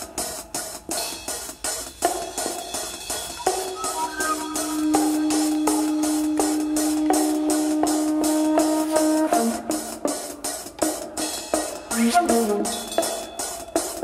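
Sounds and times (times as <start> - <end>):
sitar: 3.2 - 9.2
flute melody: 3.2 - 10.1.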